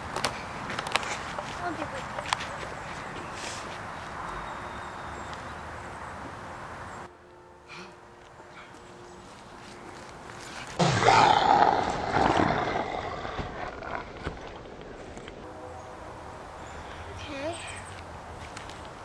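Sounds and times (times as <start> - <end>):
loud roar with growl: 10.8 - 14.2.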